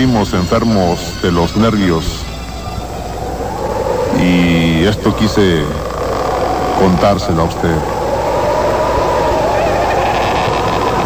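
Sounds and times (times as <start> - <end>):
steady rumbling noise: 0.0 - 11.0
faint wavering rising tone: 1.5 - 11.0.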